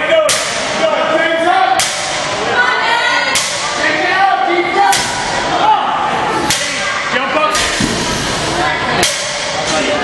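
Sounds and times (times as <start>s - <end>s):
crowd voices in a hall: 0.0s - 10.0s.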